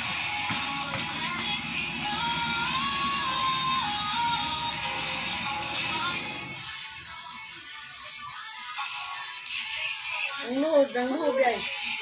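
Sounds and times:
music with melody: 0.0s - 12.0s.

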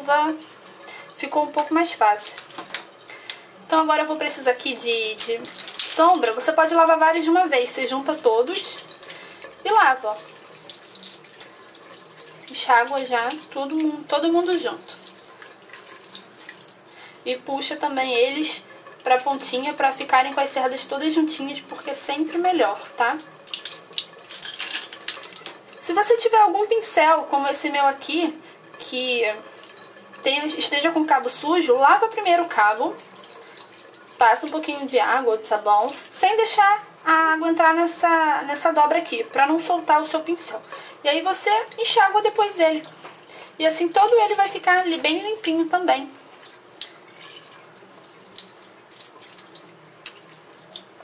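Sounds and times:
running tap hissing: 0.0s - 51.0s
small splashes and drips: 0.3s - 3.7s, 4.6s - 37.1s, 38.5s - 51.0s.

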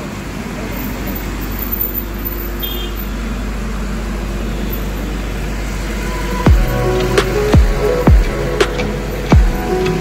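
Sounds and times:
constant low rumble: 0.0s - 10.0s.

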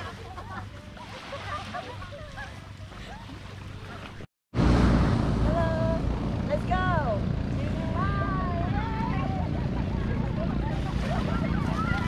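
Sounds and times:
surf: 0.0s - 12.0s.

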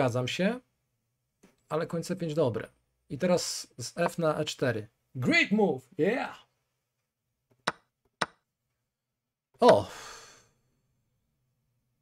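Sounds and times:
breathy sigh: 9.8s - 10.6s.

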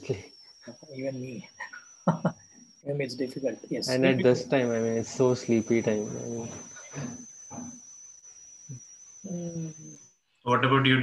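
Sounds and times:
high-pitched electronic whine: 0.0s - 11.0s
person speaking over video call: 3.0s - 7.2s, 10.5s - 11.0s.

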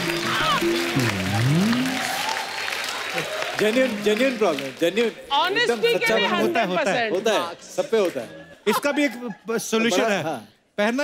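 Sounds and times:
low tone dipping and rising: 0.0s - 2.6s
studio audience applauding: 0.0s - 6.5s.

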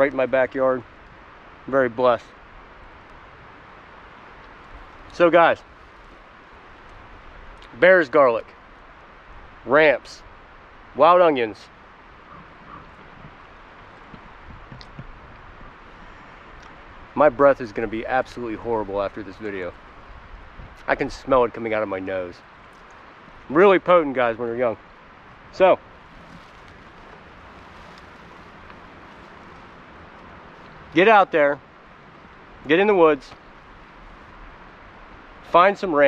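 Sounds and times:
leaves rustling: 0.0s - 36.0s
woodland background noise: 0.0s - 36.0s.

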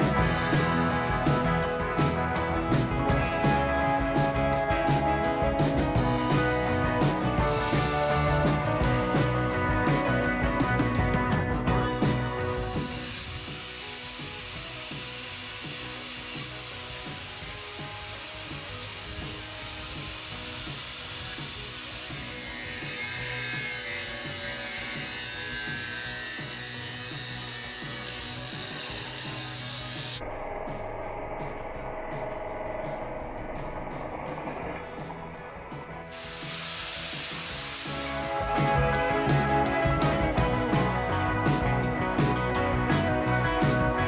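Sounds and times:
angle grinder grinding metal: 11.4s - 30.2s, 36.1s - 40.8s.

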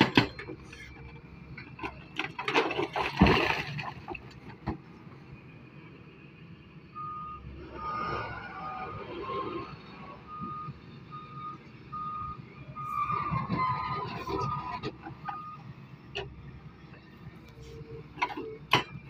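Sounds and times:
excavator engine rumble: 0.0s - 19.0s
excavator warning alarm beeping: 6.9s - 9.1s, 9.8s - 13.7s, 14.3s - 16.4s.

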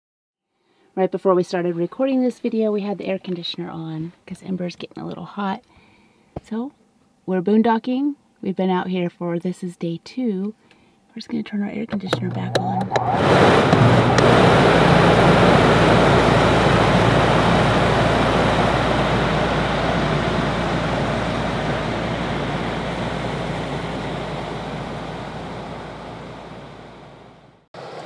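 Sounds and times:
air conditioner blowing air: 12.0s - 28.0s
low motor hum: 12.0s - 28.0s.

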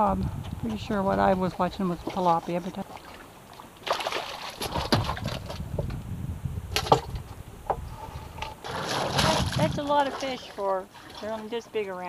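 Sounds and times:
fish splashing and flapping: 1.5s - 5.8s, 8.1s - 11.7s.

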